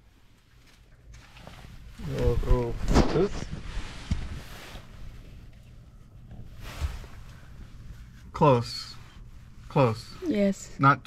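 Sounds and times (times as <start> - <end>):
rustling and handling noise: 0.0 - 10.8.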